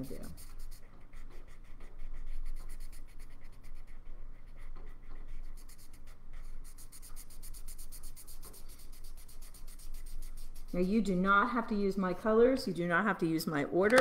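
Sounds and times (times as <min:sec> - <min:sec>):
marker rubbing on paper: 0:00.0 - 0:12.1.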